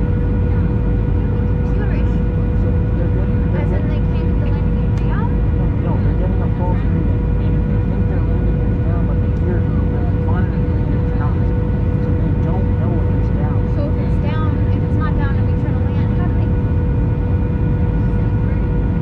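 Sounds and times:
constant mid-pitched tone: 0.0s - 19.0s
jet airliner cabin rumble: 0.0s - 19.0s.

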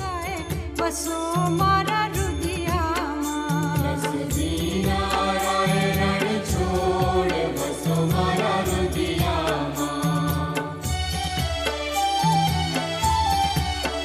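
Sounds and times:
person singing devotional song: 0.0s - 12.4s.

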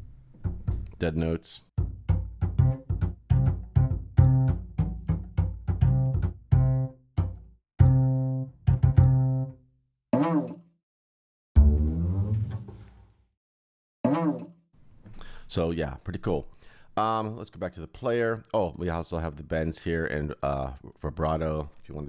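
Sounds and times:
plucked double bass notes: 0.4s - 1.0s, 1.8s - 9.5s, 11.6s - 12.9s.

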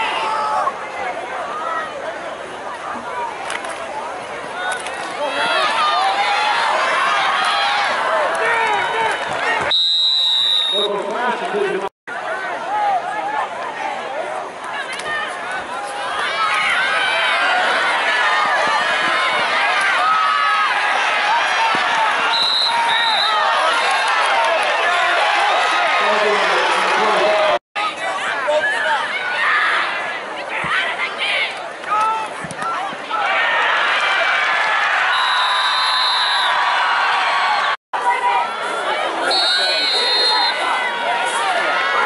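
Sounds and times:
crowd shouting and cheering: 0.0s - 42.0s
referee's whistle: 9.6s - 11.0s, 22.3s - 23.5s, 35.1s - 36.6s, 39.3s - 40.6s.

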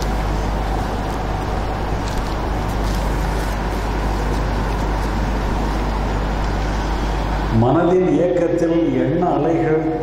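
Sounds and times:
low electrical hum: 0.0s - 10.0s
steady loud hiss: 0.0s - 10.0s.

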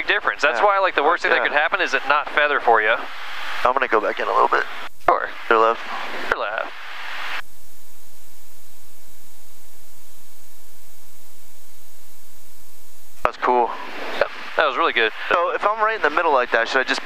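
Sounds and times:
people talking: 0.0s - 6.7s, 13.2s - 17.0s
airplane engines droning: 13.2s - 17.0s.

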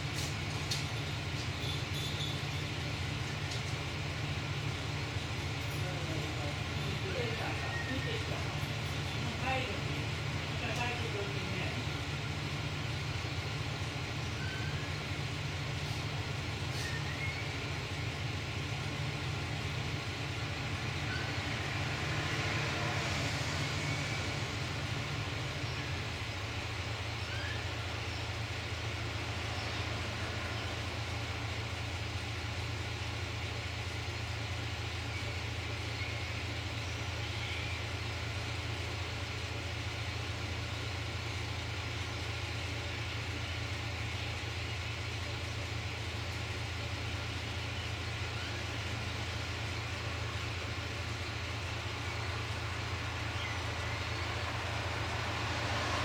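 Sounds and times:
diesel railcar engine idling: 0.0s - 56.0s.

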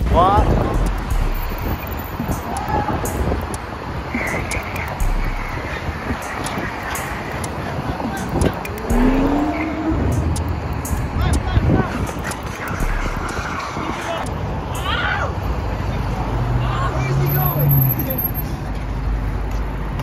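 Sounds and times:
wind rumbling on microphone: 0.0s - 14.7s
passing car traffic: 0.0s - 20.0s
brief rising tone: 8.8s - 10.5s.

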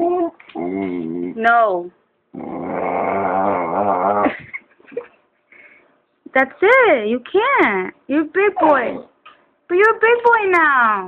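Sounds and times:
young dog growling: 0.0s - 1.6s, 2.3s - 4.5s, 8.6s - 9.2s.

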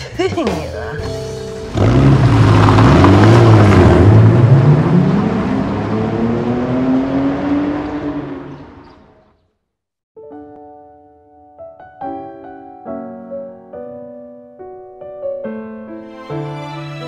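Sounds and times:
car engine revving and accelerating: 1.6s - 9.1s.

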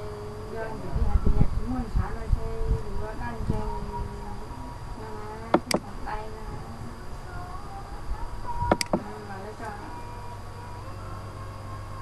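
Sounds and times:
low hum with hiss: 0.0s - 12.0s.

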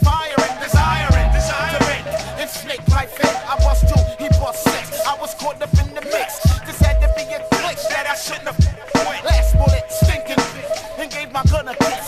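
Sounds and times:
rapping over a beat: 0.0s - 12.0s.

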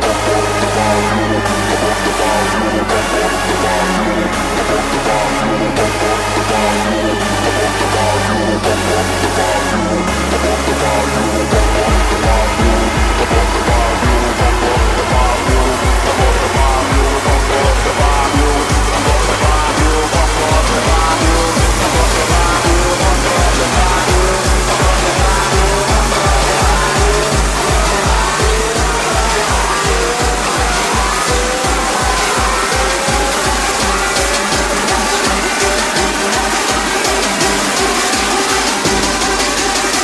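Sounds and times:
synth lead melody: 0.0s - 40.0s
distorted kick drum: 5.8s - 40.0s.

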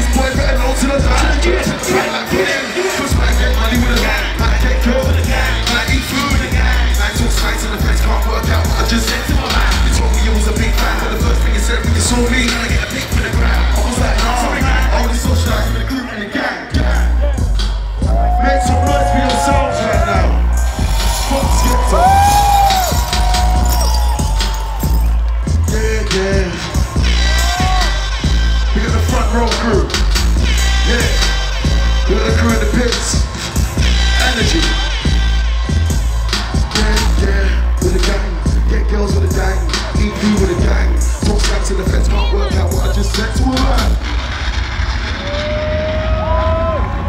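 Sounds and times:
crowd noise: 0.0s - 47.0s
electronic beat over loudspeakers: 0.0s - 47.0s
deep bass rumble: 3.1s - 15.8s, 16.8s - 47.0s.

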